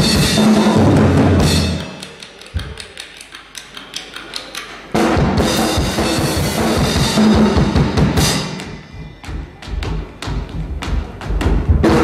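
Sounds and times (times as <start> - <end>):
full band playing: 0.0 - 2.7, 4.8 - 12.0.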